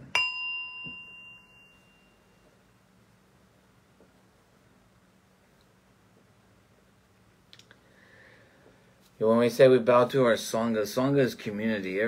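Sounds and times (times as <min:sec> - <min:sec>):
meditation bell ringing: 0:00.1 - 0:02.8.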